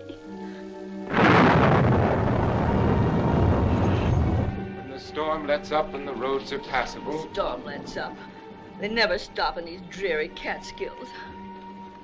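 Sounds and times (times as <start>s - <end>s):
thunderclap rumbling: 1.1s - 4.8s.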